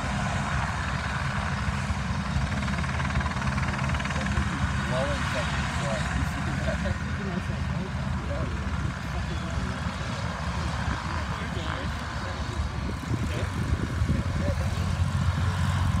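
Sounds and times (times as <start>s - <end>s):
propeller plane engines taxiing: 0.0s - 16.0s.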